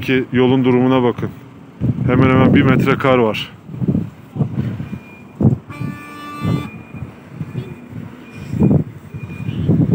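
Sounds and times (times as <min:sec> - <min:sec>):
vehicle horn: 0:05.7 - 0:07.8
faint high beep: 0:06.6 - 0:09.7.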